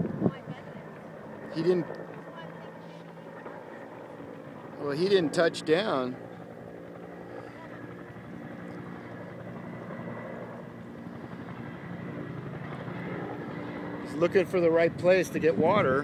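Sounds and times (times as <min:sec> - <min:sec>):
distant helicopter hovering: 0:00.0 - 0:16.0.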